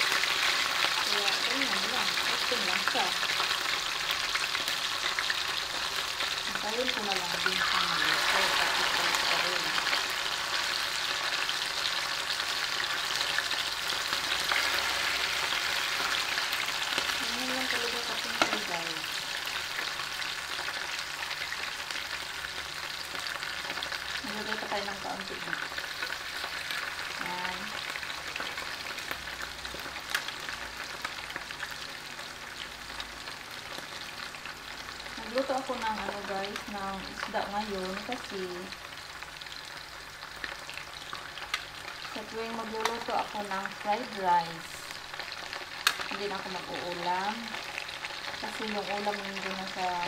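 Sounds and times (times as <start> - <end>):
fish sizzling in hot oil: 0.0 - 50.0.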